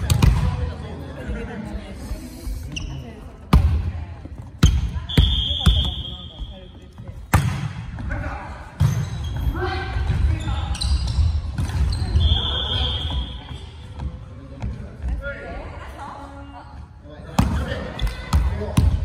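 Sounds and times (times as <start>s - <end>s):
volleyball slaps in echoing gym: 0.0s - 0.9s, 3.4s - 15.2s, 17.2s - 19.0s.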